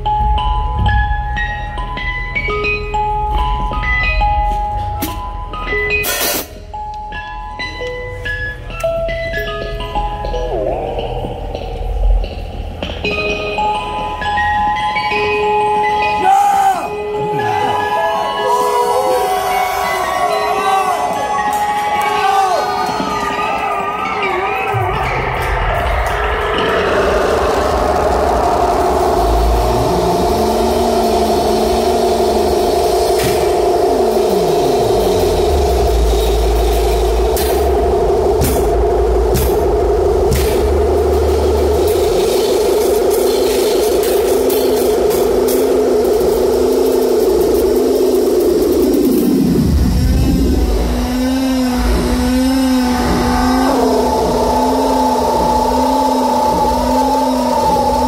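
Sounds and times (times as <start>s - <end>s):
wavering sustained tones: 9.9s - 58.0s.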